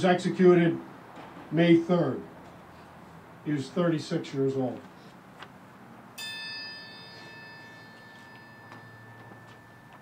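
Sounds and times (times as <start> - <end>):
metal triangle ringing: 6.2 - 10.0.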